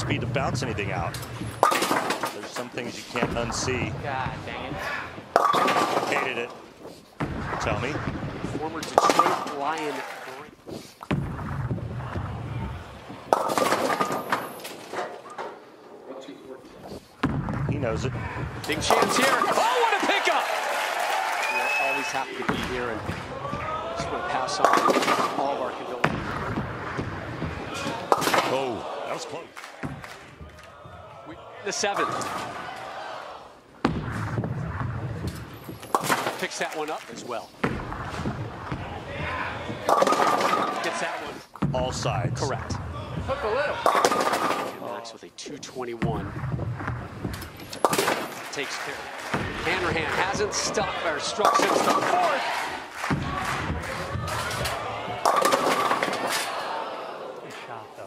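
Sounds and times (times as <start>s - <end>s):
bowling pins crashing and scattering: 0.4s - 6.4s, 7.2s - 10.2s, 11.1s - 15.2s, 17.2s - 20.6s, 22.4s - 28.8s, 33.8s - 36.7s, 37.6s - 44.9s, 46.1s - 56.7s
bowling ball rolling on wooden lane: 11.1s - 15.4s, 26.0s - 28.4s, 33.9s - 36.4s, 37.6s - 40.8s, 46.1s - 48.5s.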